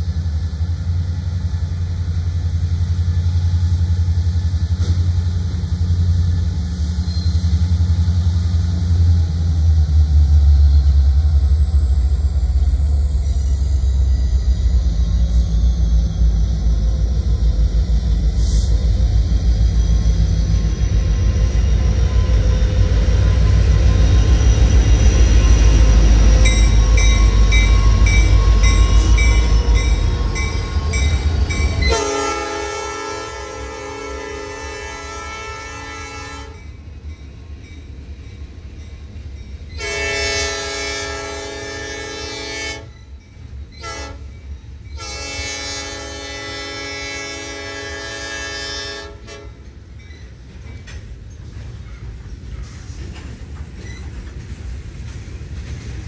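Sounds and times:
diesel locomotives rumbling past: 0.0 - 56.0
locomotive bell ringing: 24.3 - 32.2, 36.4 - 40.0, 49.8 - 50.6
train air horn: 31.8 - 36.6, 39.8 - 42.9, 43.8 - 44.3, 45.0 - 49.7.

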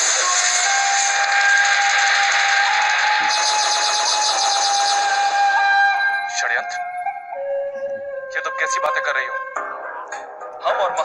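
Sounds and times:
dialogue: 3.0 - 11.0.

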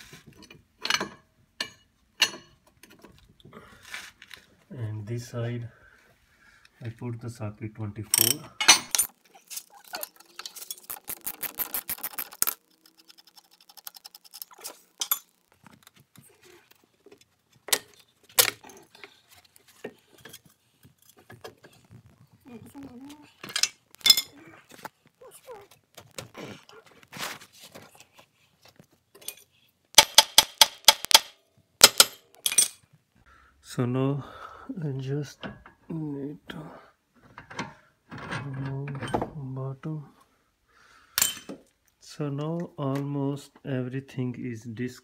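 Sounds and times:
metal tools clinking and knocking: 0.3 - 3.2, 8.1 - 15.5, 17.7 - 21.8, 23.4 - 24.4, 29.1 - 32.8
ratchet wrench clicking: 30.0 - 32.0.

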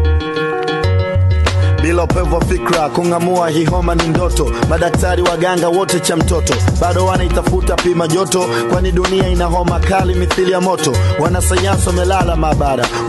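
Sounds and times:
deep bass line: 0.0 - 8.1, 8.7 - 13.0
rapping over a beat: 1.8 - 13.0.

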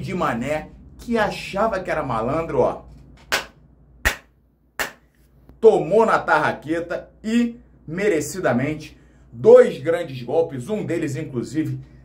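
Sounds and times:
sharp hand claps: 3.3 - 5.1.

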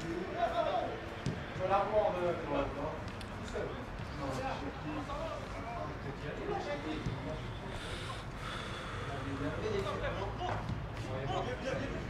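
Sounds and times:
distant players' voices: 0.0 - 12.0.

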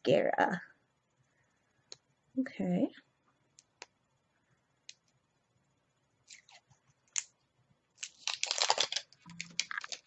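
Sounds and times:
packaging crinkling and tearing: 8.0 - 10.0
packaging rustling: 8.0 - 10.0.

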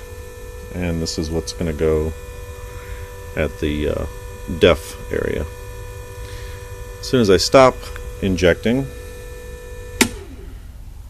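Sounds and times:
injection pump humming: 0.0 - 11.0
pump whine spinning down: 0.0 - 11.0
sharp switch click: 10.0 - 10.2.

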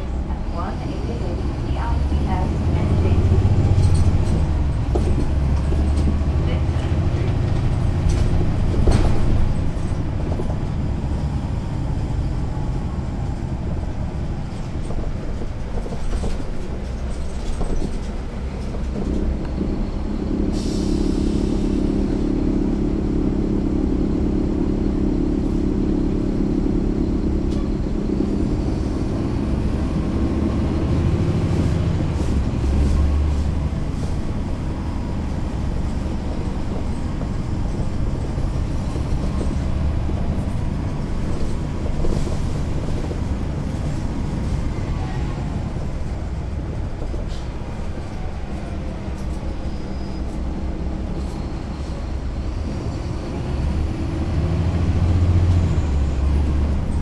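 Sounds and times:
bus diesel engine running: 0.0 - 57.0.

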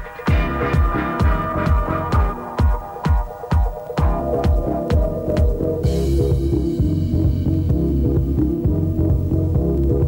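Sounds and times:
house music: 0.0 - 10.0
kick drum: 0.0 - 10.0
deep throbbing bassline: 0.3 - 3.2, 4.0 - 10.0.

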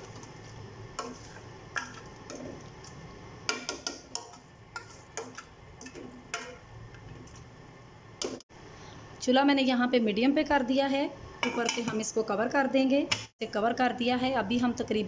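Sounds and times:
spoon knocking on metal pot: 3.5 - 6.6.

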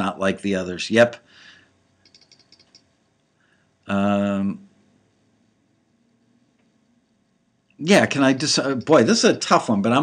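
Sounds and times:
person speaking: 0.0 - 1.2, 3.9 - 4.7, 7.8 - 10.0
light computer clicks: 2.0 - 2.9, 8.7 - 9.2.

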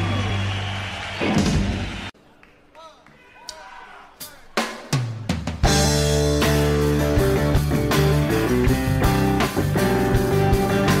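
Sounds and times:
music: 0.0 - 2.1, 4.2 - 11.0.

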